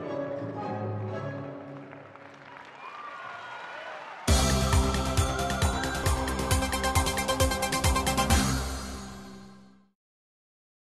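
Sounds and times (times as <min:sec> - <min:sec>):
faint audience applause: 0:01.3 - 0:06.7.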